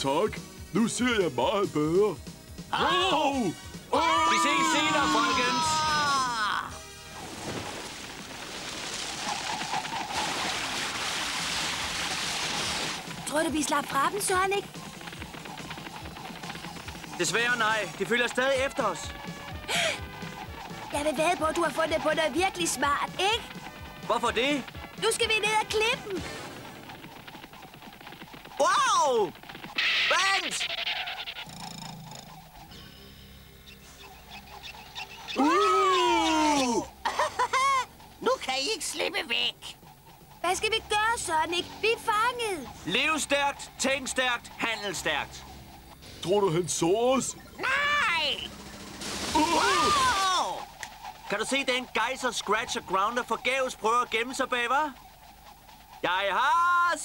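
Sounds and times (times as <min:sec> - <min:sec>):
cartoon rushing whoosh: 0:49.1 - 0:51.6.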